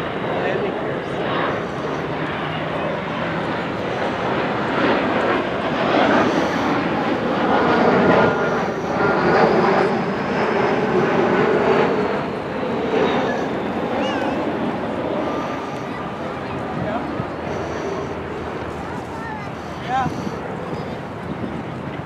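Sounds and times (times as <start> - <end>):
jet airliner engine roar: 0.0 - 22.0.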